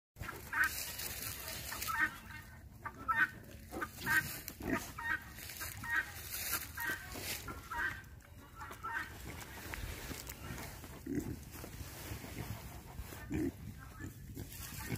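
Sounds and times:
pigs grunting and squeaking: 0.2s - 14.9s.

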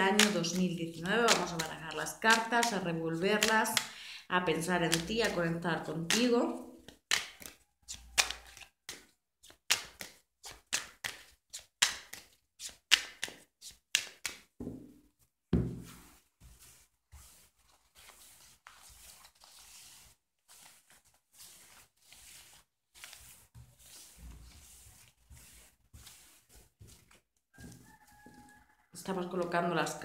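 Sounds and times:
cards slapping while shuffled: 0.1s - 4.0s, 4.6s - 14.9s, 17.8s - 27.8s
cards sliding over cloth: 15.8s - 27.2s.

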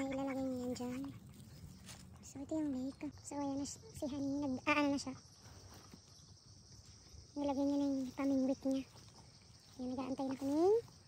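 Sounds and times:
woman's voice: 9.7s - 10.9s.

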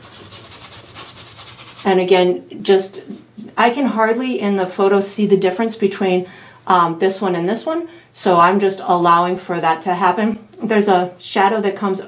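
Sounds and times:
paintbrush scratching on canvas: 0.0s - 2.0s.

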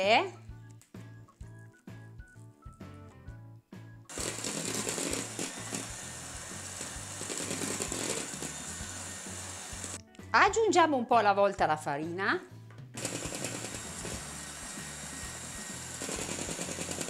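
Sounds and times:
electric hand mixer whisking batter: 4.1s - 10.0s, 13.0s - 17.0s.

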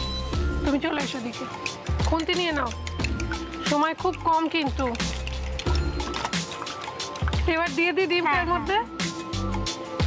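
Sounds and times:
background music: 0.0s - 10.0s
spoon beating eggs in a bowl: 1.5s - 7.6s.

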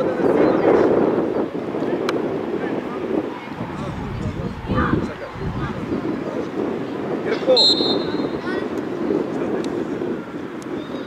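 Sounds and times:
wind on microphone: 0.0s - 11.0s
high whistle blast: 7.6s - 8.3s.

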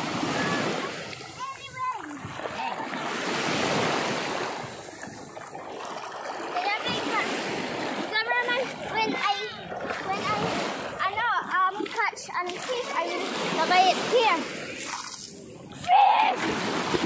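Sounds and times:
water splashing around legs: 0.0s - 17.0s
children calling out: 0.2s - 3.0s, 15.8s - 16.5s.

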